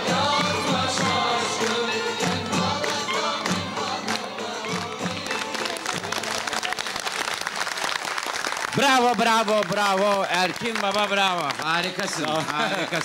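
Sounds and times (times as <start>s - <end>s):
live band with singing: 0.0s - 7.4s
audience applause and cheering: 0.0s - 13.0s.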